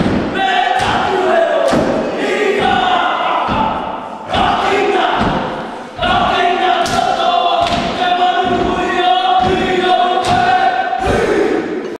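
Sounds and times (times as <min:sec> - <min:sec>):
group singing long notes: 0:00.0 - 0:12.0.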